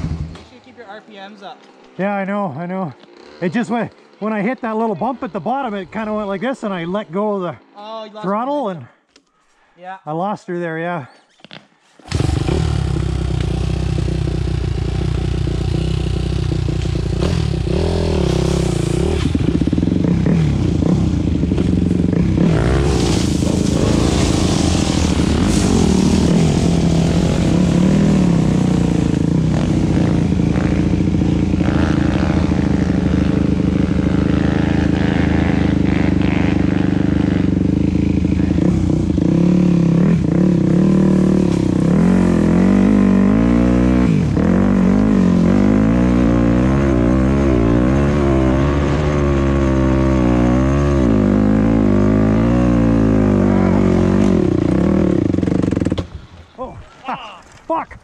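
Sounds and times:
dirt bike engine revving: 0:01.8 - 0:07.8, 0:12.0 - 0:56.1.

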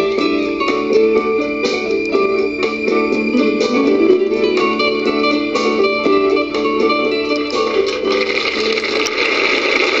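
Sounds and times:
audience applauding: 0:08.0 - 0:10.0.

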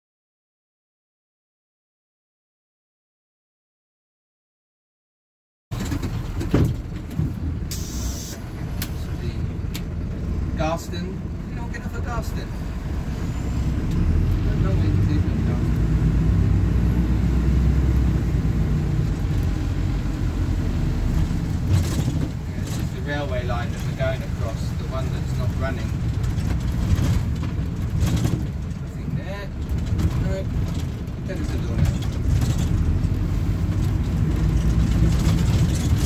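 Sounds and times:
diesel engine and road rumble: 0:05.7 - 0:36.0.

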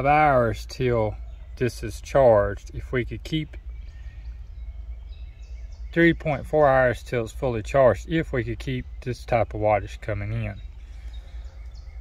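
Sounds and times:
distant birds calling: 0:00.0 - 0:12.0
steady low rumble: 0:00.0 - 0:12.0.

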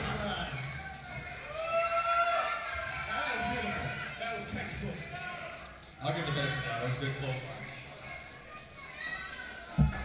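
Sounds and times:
low crowd chatter: 0:00.0 - 0:10.0.

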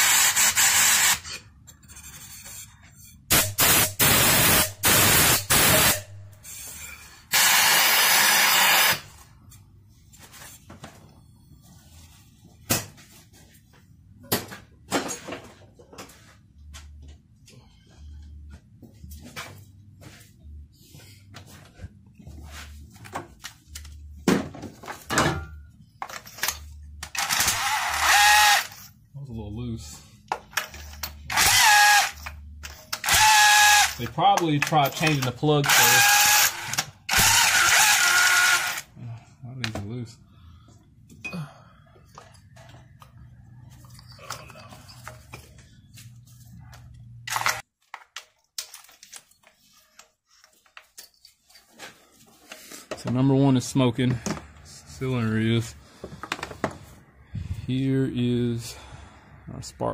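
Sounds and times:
cordless power tool whirring: 0:27.2 - 0:28.7, 0:31.3 - 0:32.2, 0:33.0 - 0:34.0, 0:35.7 - 0:38.9.

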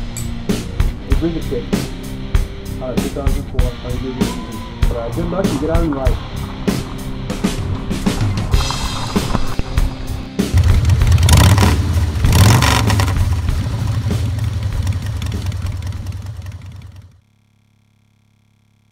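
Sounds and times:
music: 0:00.0 - 0:16.2
motorcycle engine revving: 0:05.4 - 0:18.9.

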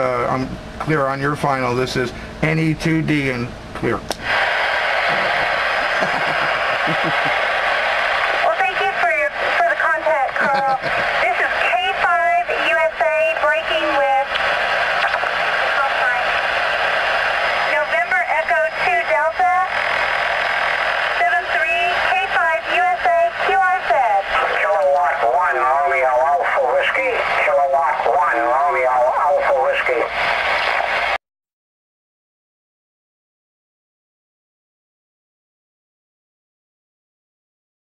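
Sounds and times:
receiver hiss: 0:00.0 - 0:31.2
voice over radio speaker: 0:05.0 - 0:07.5, 0:08.3 - 0:16.4, 0:17.7 - 0:19.7, 0:21.2 - 0:30.9.

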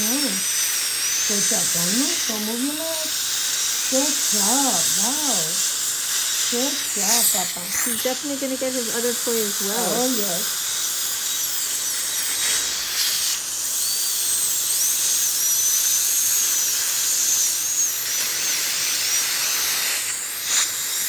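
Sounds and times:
dental drill whining: 0:00.0 - 0:21.0.

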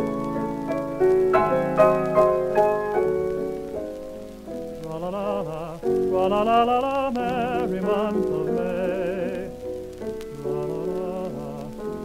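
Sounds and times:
piano chords: 0:00.0 - 0:12.0
shellac record crackle: 0:00.0 - 0:12.0
man singing with vibrato: 0:04.8 - 0:12.0.

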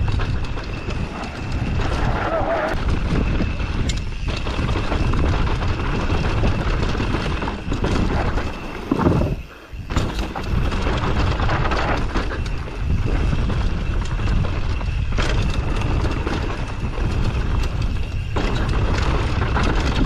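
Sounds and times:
bike rattling: 0:00.0 - 0:20.0
bike tyres rolling over dirt: 0:00.0 - 0:20.0
wind on microphone: 0:00.0 - 0:20.0.

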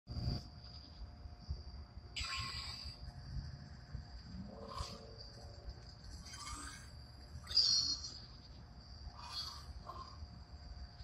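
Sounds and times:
insect trill: 0:00.1 - 0:11.0.

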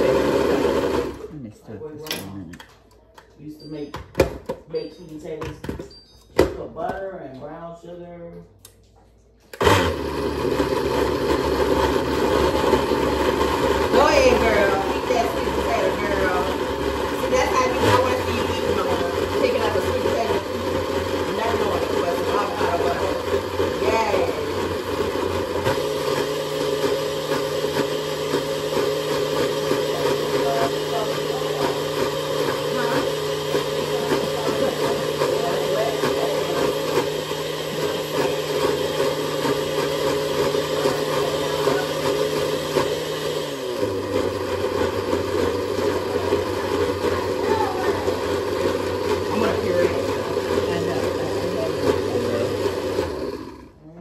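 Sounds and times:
blender running: 0:00.0 - 0:01.4, 0:09.5 - 0:54.0.

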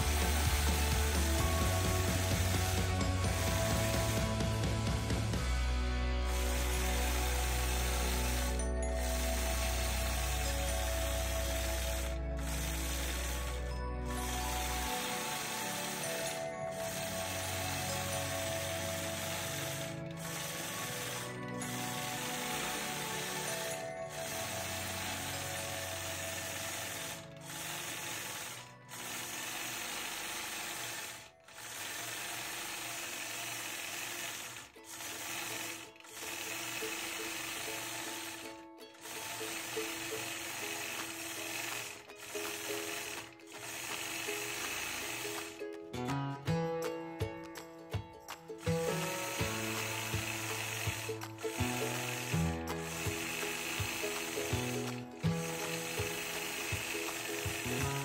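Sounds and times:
quilting machine stitching: 0:00.0 - 0:45.9, 0:48.6 - 0:58.0.

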